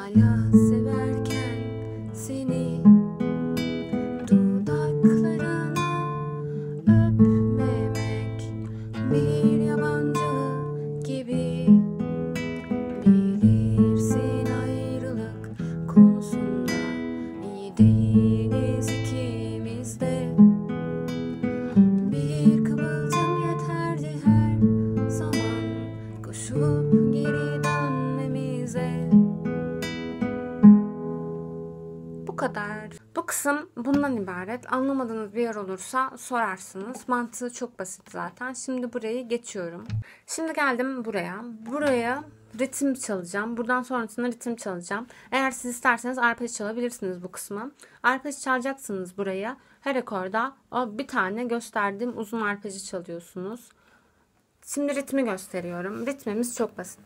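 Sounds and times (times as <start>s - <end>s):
person singing softly: 0.0s - 2.8s, 4.2s - 11.8s, 13.0s - 20.4s, 22.1s - 29.2s
fingerpicked acoustic guitar: 0.0s - 33.1s.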